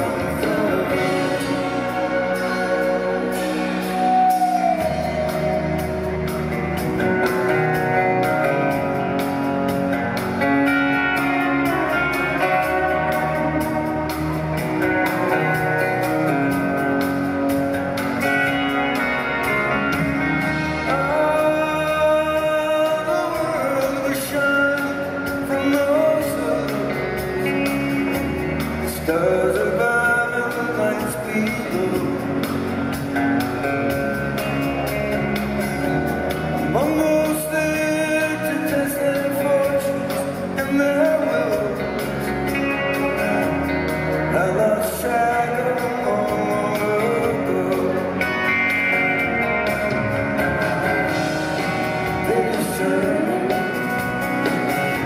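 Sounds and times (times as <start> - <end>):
folk-rock band playing: 0.0 - 55.0.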